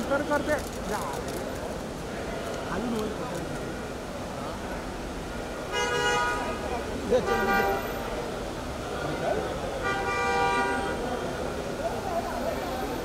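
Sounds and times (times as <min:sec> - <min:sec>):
crowd chatter: 0:00.0 - 0:13.0
traffic noise: 0:00.0 - 0:13.0
car horns honking: 0:05.7 - 0:06.6.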